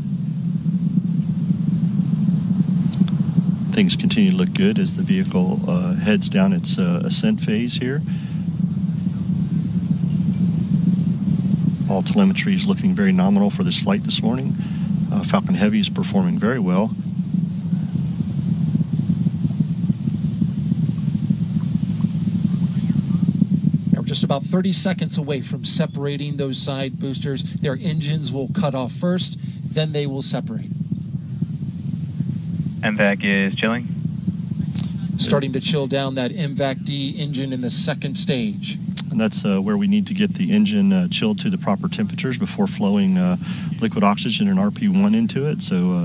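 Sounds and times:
rocket engines rumbling: 0.0s - 46.0s.

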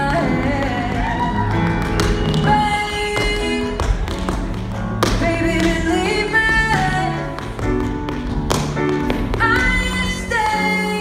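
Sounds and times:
pop song: 0.0s - 11.0s
tap shoes on stage floor: 0.0s - 11.0s.

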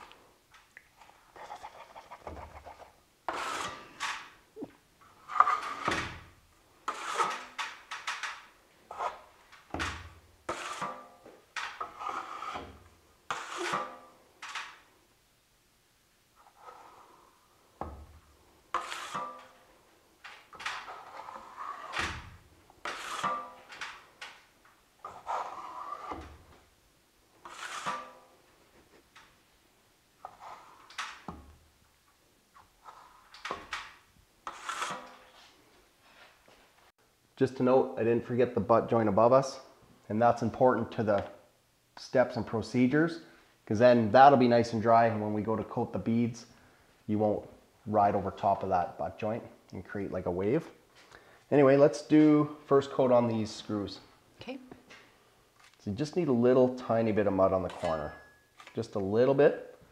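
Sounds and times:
trowel scraping joint compound: 1.4s - 4.4s, 5.0s - 14.8s, 16.4s - 18.0s, 18.7s - 24.4s, 25.0s - 26.6s, 27.4s - 29.3s, 30.2s - 31.6s, 32.5s - 35.6s, 57.6s - 58.8s.

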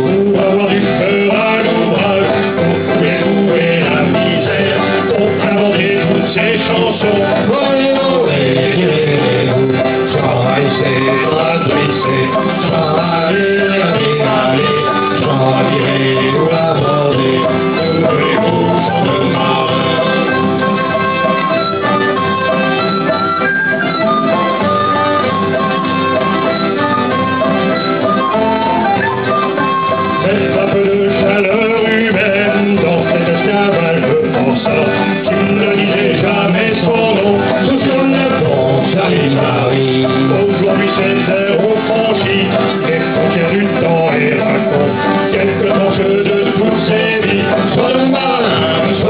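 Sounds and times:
acoustic guitar accompaniment: 0.0s - 49.0s
small wind instrument melody: 10.6s - 33.7s.

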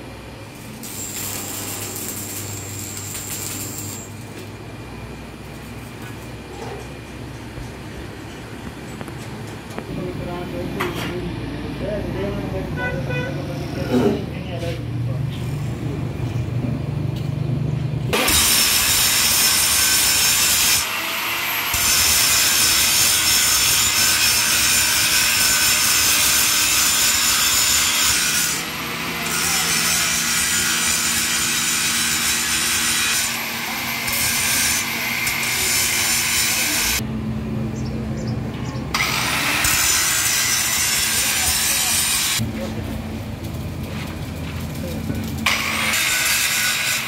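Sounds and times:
arc welding crackling hiss: 0.4s - 4.6s, 18.2s - 20.9s, 21.7s - 37.0s.

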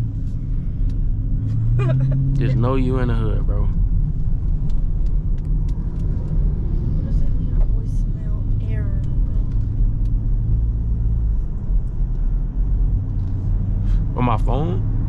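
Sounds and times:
car engine drone from inside: 0.0s - 15.0s.

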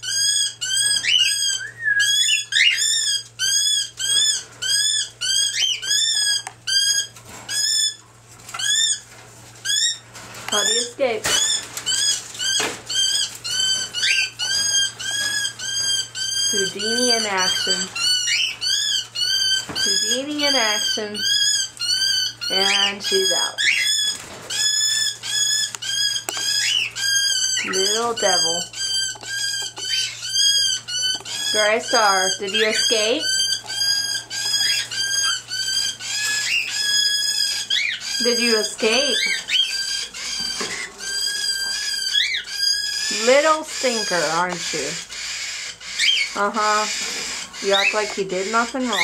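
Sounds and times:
cockatiel chirping: 0.0s - 49.0s.

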